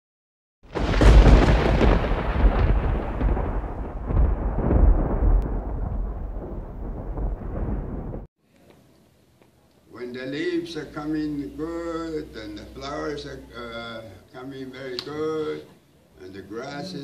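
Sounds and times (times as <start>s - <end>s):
thunder-like crash and rumble: 0.7s - 8.3s.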